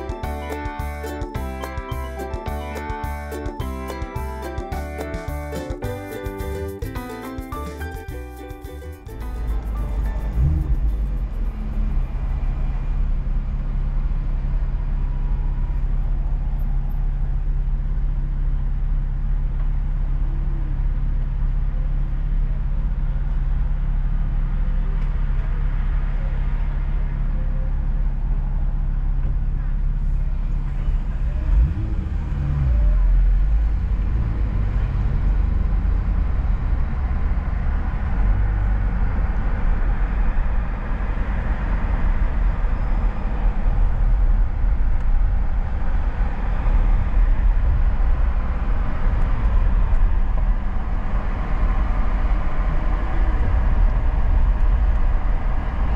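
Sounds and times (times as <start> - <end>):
car engine idling and revving: 0.0 - 55.9
road noise: 0.0 - 55.9.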